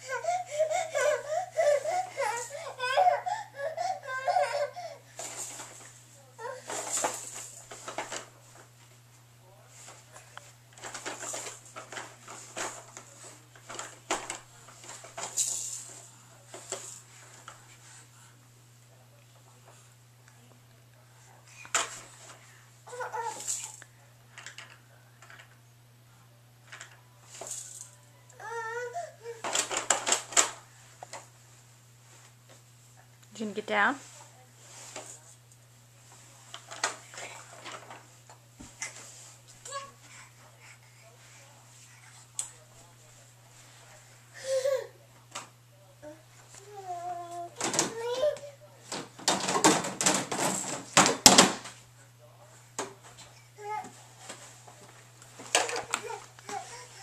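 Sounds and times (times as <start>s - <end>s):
toddler babbling: 0.0s - 5.0s, 22.9s - 23.5s, 28.4s - 29.5s, 39.6s - 40.1s, 46.0s - 48.6s, 53.6s - 53.9s, 55.7s - 57.0s
plastic toys rattling and clattering: 5.2s - 8.6s, 10.7s - 17.5s, 23.2s - 25.6s, 29.4s - 30.6s, 36.5s - 38.1s, 47.6s - 48.2s, 48.9s - 51.6s, 55.4s - 56.8s.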